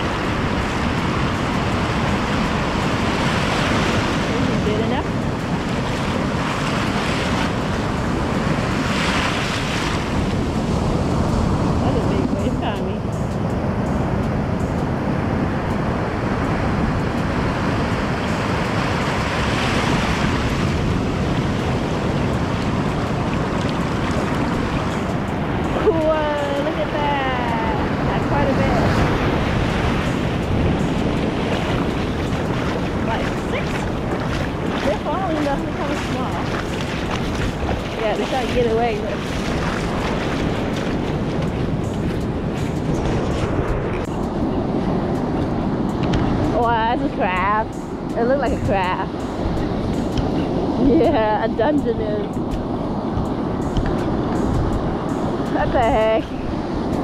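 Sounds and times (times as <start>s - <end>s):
ocean surf washing in shallows: 0.0s - 57.0s.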